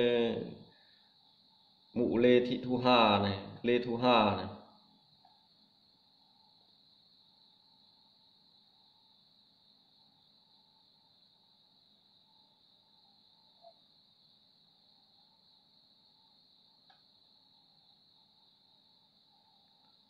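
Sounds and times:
crickets chirring: 0.0s - 20.0s.

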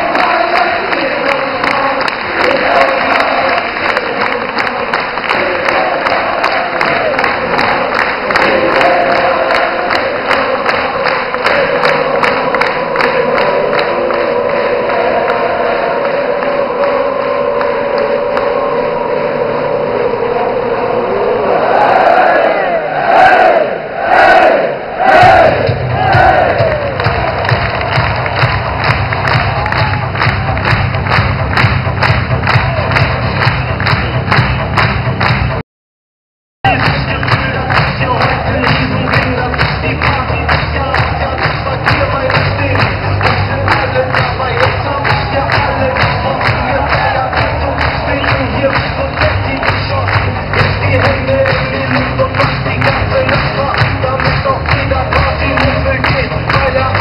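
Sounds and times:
crowd clapping in rhythm: 0.0s - 21.0s, 21.7s - 35.6s, 36.6s - 57.0s
music over loudspeakers: 0.0s - 21.6s, 25.1s - 35.6s, 36.7s - 57.0s
crowd singing: 0.0s - 29.8s, 36.7s - 57.0s.

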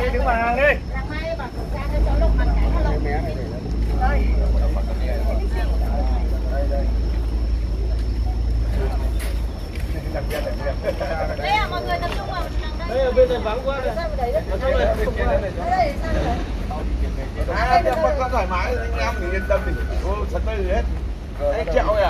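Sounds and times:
background chatter of people: 0.0s - 22.0s
steady low rumble: 0.0s - 22.0s.

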